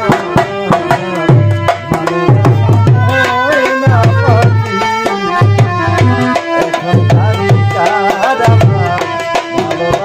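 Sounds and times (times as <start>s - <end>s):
drum beating quick rhythm: 0.0s - 10.0s
harmonium: 0.0s - 10.0s
sliding melody line: 0.0s - 10.0s.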